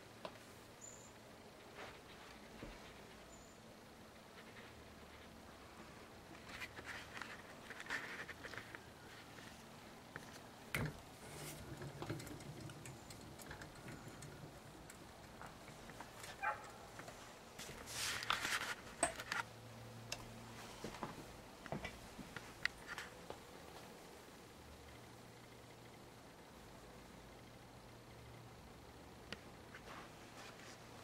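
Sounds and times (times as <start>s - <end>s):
faint low hum: 0.0s - 31.0s
rustling: 4.2s - 19.5s, 29.7s - 31.0s
handling clicks and knocks: 10.2s - 17.2s.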